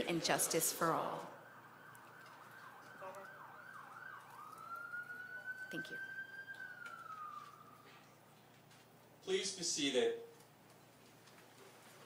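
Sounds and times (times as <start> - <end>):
faint emergency vehicle siren: 0.0 - 9.0.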